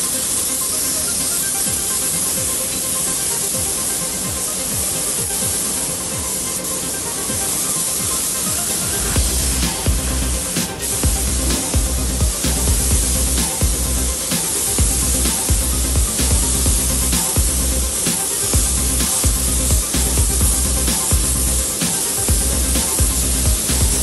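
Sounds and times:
electronic background music: 0.0s - 24.0s
spray gun hissing: 0.1s - 24.0s
heavy pulsing low beat: 1.6s - 24.0s.

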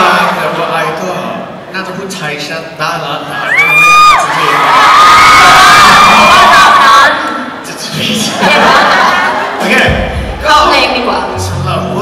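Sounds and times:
audience screaming and cheering: 3.3s - 7.6s.

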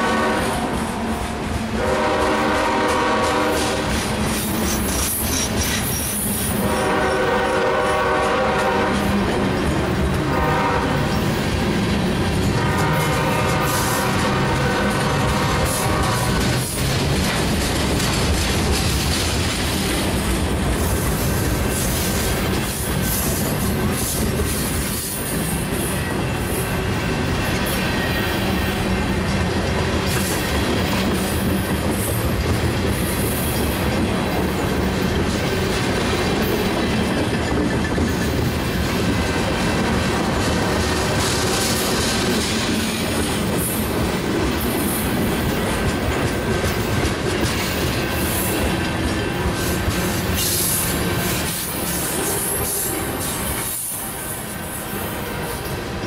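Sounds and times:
clickety-clack of train: 0.0s - 56.0s
train wheels rumbling on rails: 0.0s - 56.0s.

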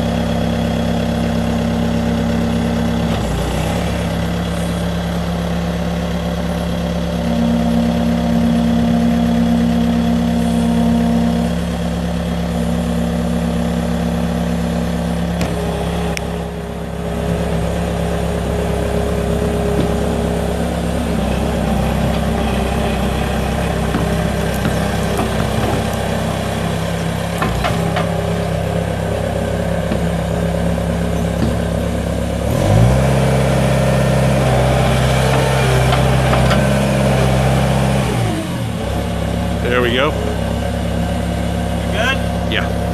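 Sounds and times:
diesel engine running: 0.0s - 42.9s
tracks driving: 0.0s - 42.9s.

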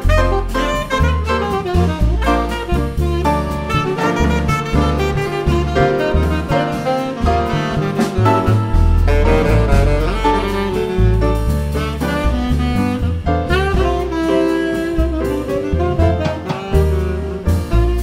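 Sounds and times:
double bass: 0.0s - 18.0s
drum kit: 0.0s - 18.0s
tenor saxophone solo: 0.0s - 18.0s.

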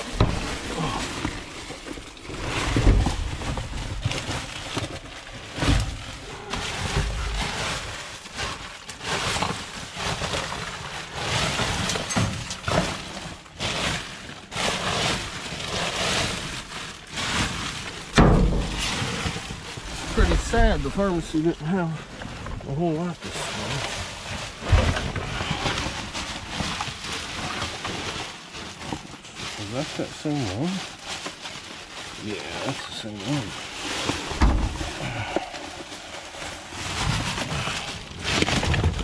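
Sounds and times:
plastic bags rustling: 0.0s - 39.0s.

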